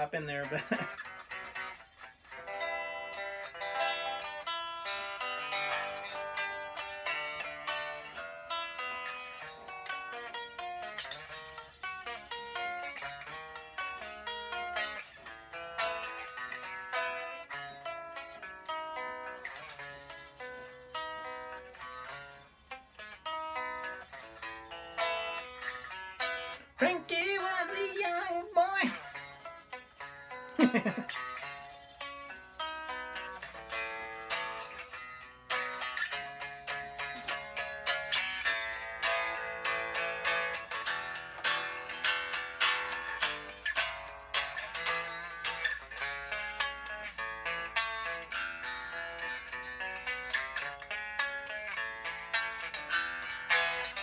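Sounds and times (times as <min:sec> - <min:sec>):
unamplified electric guitar playing: 0:00.0 - 0:54.0.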